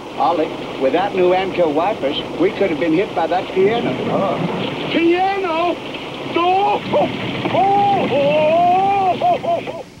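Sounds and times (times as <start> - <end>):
man's falsetto wailing cry: 7.6 - 9.8.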